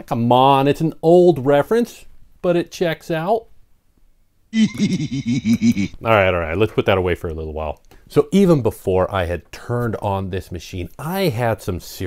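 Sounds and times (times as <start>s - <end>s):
man laughing: 4.6s - 6.0s.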